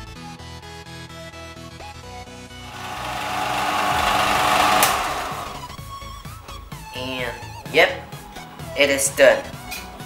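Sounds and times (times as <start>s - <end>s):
background music: 0.0s - 10.0s
sander sanding wood: 2.7s - 5.8s.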